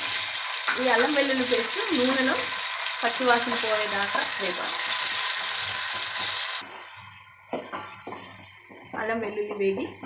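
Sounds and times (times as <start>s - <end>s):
onions sizzling in oil: 0.0s - 7.6s.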